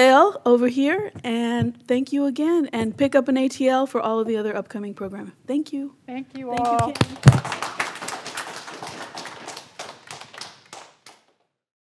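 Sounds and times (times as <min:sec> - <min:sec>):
audience applauding: 0:06.6 - 0:11.4.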